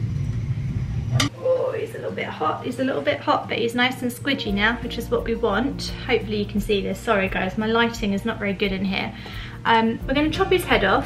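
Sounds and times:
steady low rumble: 0.0 - 1.3
woman talking: 1.4 - 11.0.

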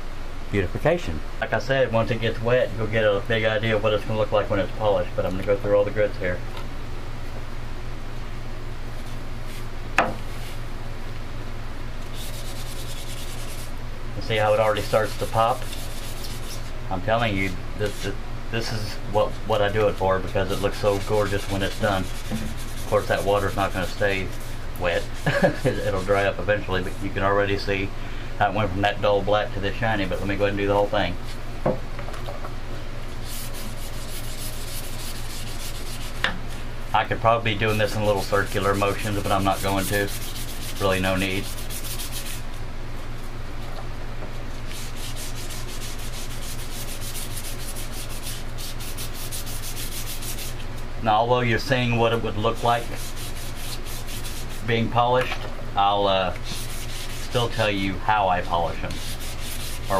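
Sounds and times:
steady low hum: 0.0 - 59.9
pad scrubbing horn: 12.1 - 13.7, 18.7 - 27.2, 33.2 - 36.2, 37.6 - 42.4, 44.6 - 50.6, 52.5 - 54.8, 56.4 - 57.6, 58.9 - 59.9.

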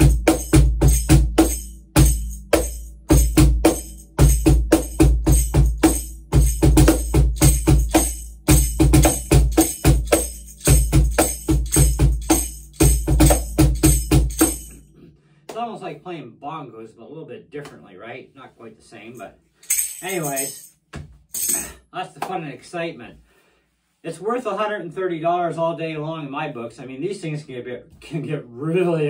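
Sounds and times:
cajon bass thumps and snare slaps: 0.0 - 14.7
foot tambourine jingling: 0.0 - 14.9, 19.1 - 21.9.

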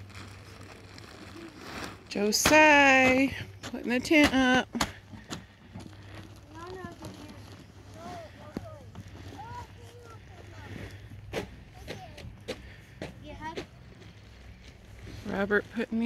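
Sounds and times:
faint children's voices: 5.5 - 15.2.

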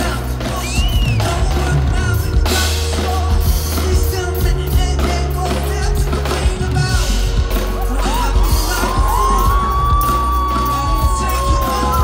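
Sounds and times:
live pop-rock band: 0.0 - 12.0.

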